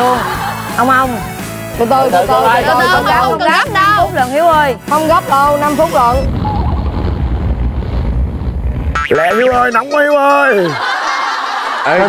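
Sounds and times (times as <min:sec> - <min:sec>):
wind buffeting microphone: 0:05.5 - 0:09.1.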